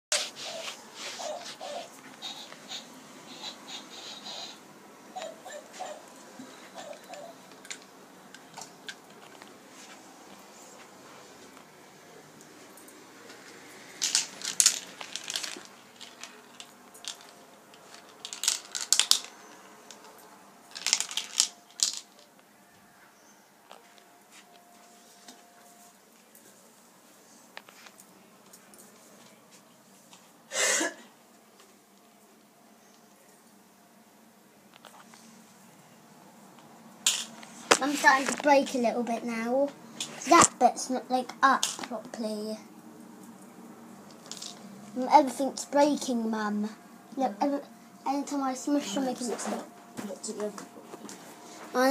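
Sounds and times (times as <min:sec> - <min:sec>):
marbles clattering on plastic tracks: 0:14.0 - 0:22.3, 0:37.0 - 0:38.5, 0:44.2 - 0:44.6.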